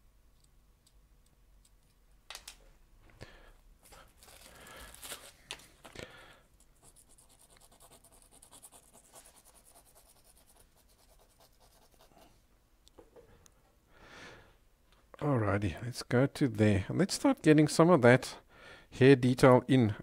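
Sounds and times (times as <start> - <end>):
pencil scratching on paper: 6.6 - 12.3.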